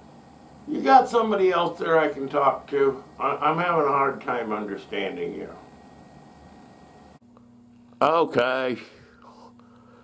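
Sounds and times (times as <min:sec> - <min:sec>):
room tone hiss: 0:00.0 - 0:10.0
steady low hum: 0:00.0 - 0:10.0.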